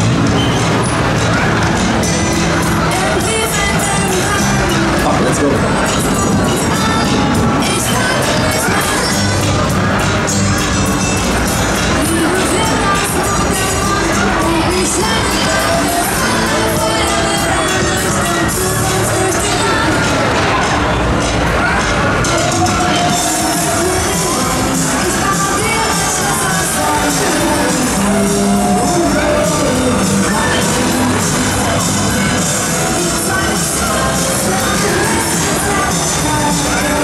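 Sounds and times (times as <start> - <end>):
loud fairground music: 0.0 - 37.0
riders screaming and cheering: 0.0 - 37.0.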